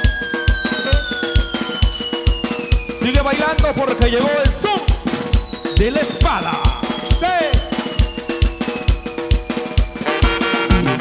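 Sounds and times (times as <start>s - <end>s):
high tone sliding down: 0.0s - 10.0s
drum kit steady beat: 0.0s - 11.0s.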